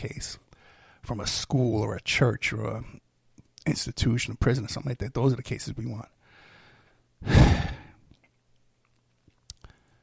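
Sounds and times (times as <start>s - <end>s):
man sighing heavily: 7.2s - 8.0s.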